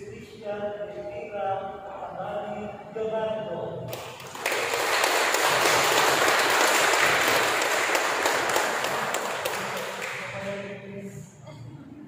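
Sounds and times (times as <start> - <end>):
guests applauding: 3.9 - 10.5.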